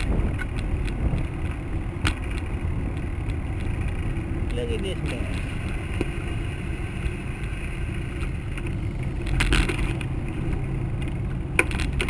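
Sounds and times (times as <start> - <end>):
cars passing: 0.0 - 12.0.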